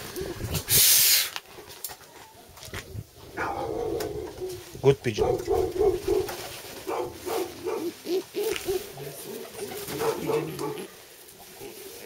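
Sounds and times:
pigeons cooing: 0:00.0 - 0:00.7, 0:03.2 - 0:12.0.

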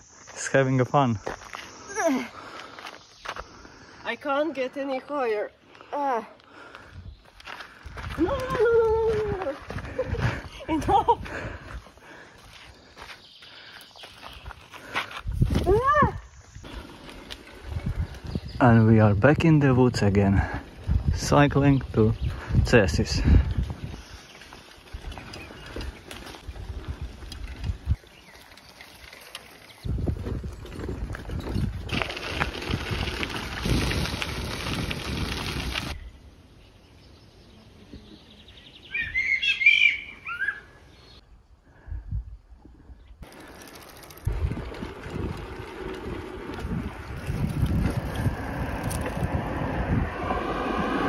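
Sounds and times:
bicycle tyre rumble: 0:06.5 - 0:36.3, 0:41.7 - 0:51.0
wind on microphone: 0:15.2 - 0:19.4, 0:20.3 - 0:24.3, 0:29.8 - 0:36.1, 0:44.2 - 0:51.0
bird chirping: 0:36.0 - 0:41.3.

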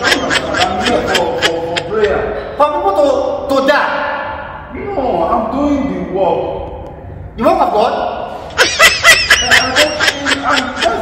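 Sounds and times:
person laughing: 0:00.0 - 0:02.2, 0:08.6 - 0:11.0.

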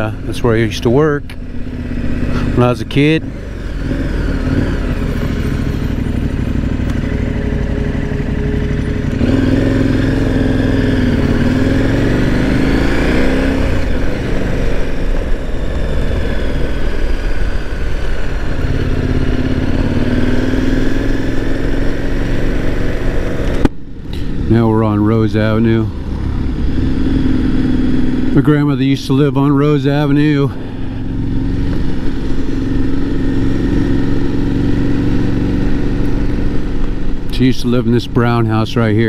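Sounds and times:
motorcycle engine running: 0:00.0 - 0:39.0.

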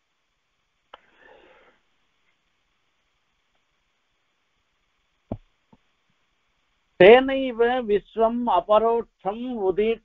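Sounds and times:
soft in-breath: 0:01.0 - 0:01.9.

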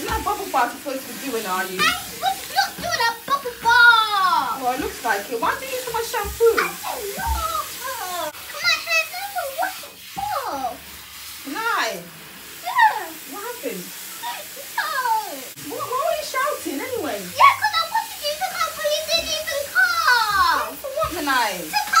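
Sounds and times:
shower running: 0:00.0 - 0:22.0.

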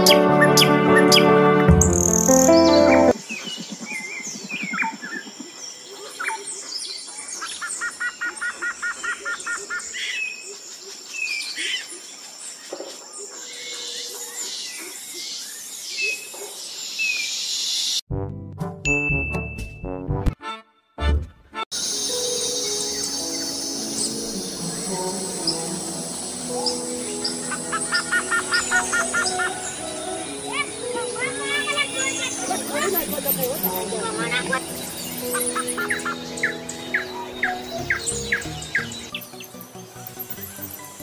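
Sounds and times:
music: 0:00.0 - 0:03.2, 0:18.1 - 0:41.0
birds chirping and calling: 0:00.0 - 0:17.8, 0:22.0 - 0:41.0.

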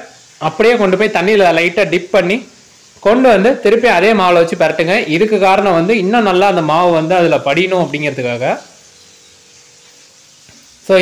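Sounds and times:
man talking: 0:00.0 - 0:08.7.

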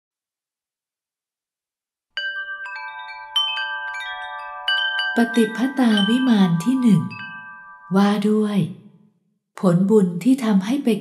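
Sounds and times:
chimes ringing: 0:02.2 - 0:08.4
person speaking: 0:05.2 - 0:08.8.

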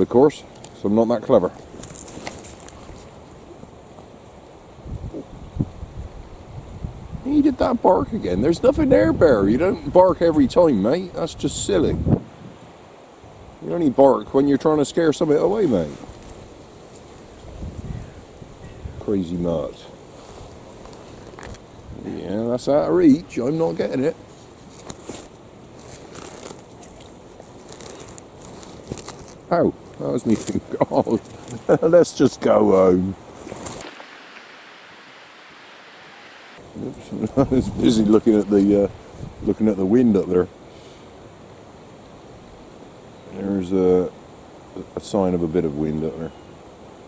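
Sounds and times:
wind buffeting microphone: 0:04.8 - 0:12.7, 0:17.2 - 0:19.7, 0:21.4 - 0:23.2, 0:36.6 - 0:40.0
faint rustling: 0:19.6 - 0:21.7, 0:23.7 - 0:31.8.

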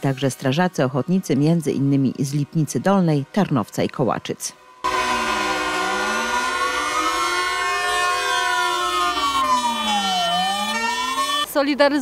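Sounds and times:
steady tone: 0:04.6 - 0:11.5
fire engine siren wailing: 0:04.8 - 0:11.5.

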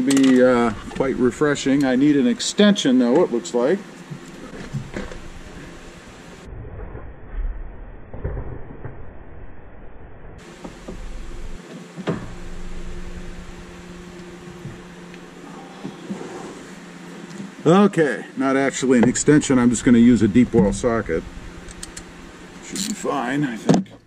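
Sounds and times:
low rumble: 0:00.5 - 0:02.1, 0:04.2 - 0:15.5, 0:18.8 - 0:23.5.

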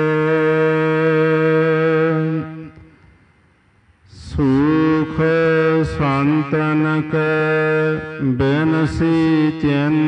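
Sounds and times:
man chanting a hymn: 0:00.0 - 0:03.0, 0:04.0 - 0:10.0.

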